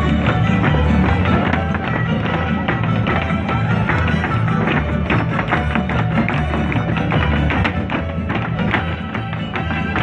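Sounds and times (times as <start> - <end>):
dancers' shoes stamping on stage: 0.0 - 10.0
folk dance music with strummed strings: 0.0 - 10.0.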